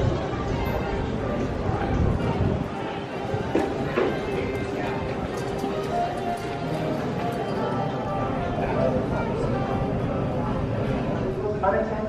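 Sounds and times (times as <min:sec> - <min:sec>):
indistinct chatter: 0:00.0 - 0:12.0
music playing: 0:00.8 - 0:11.3.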